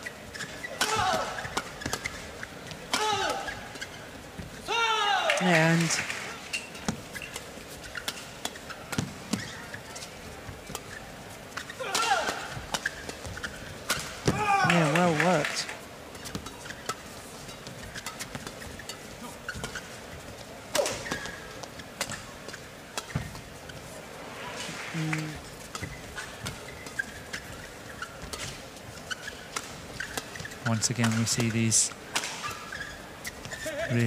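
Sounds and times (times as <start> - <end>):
rackets striking shuttlecock: 29.5 - 32.6.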